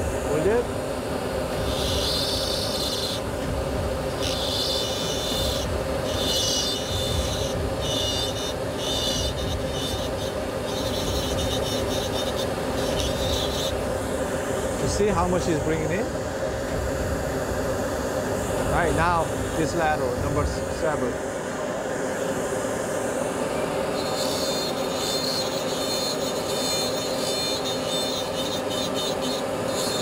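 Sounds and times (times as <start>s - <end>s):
steady motor hum: 0.0s - 30.0s
high scratchy grinding: 1.5s - 14.0s, 24.0s - 30.0s.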